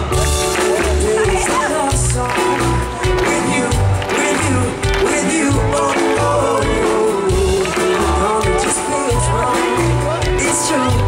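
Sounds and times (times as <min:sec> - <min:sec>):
live pop song over concert speakers: 0:00.0 - 0:11.0.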